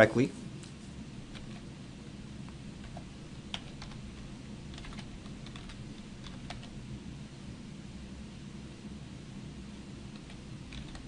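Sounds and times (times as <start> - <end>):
low steady hum: 0.0 - 11.0
typing on computer keyboard: 1.3 - 1.7, 2.8 - 6.8, 10.1 - 11.0.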